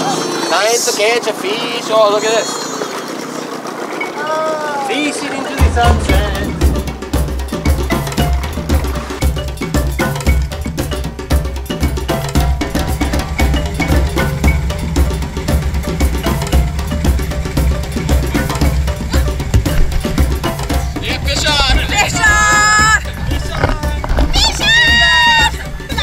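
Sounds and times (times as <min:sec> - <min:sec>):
busy percussion beat: 0:01.4 - 0:26.0
pulsing bass line: 0:05.5 - 0:26.0.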